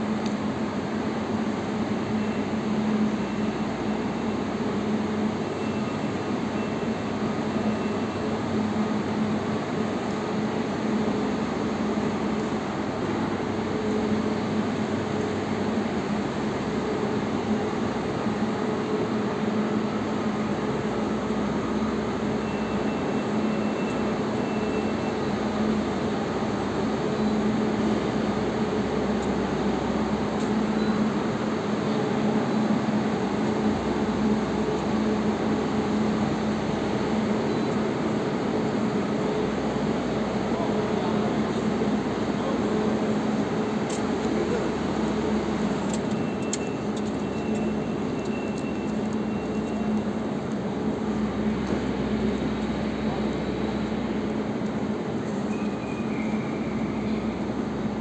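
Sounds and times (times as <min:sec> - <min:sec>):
electric trains humming: 0:00.0 - 0:58.0
station hall background noise: 0:00.0 - 0:58.0.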